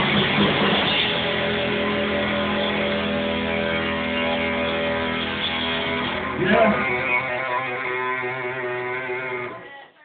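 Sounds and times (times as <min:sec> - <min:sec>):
electric guitar chord ringing: 0:00.0 - 0:09.6.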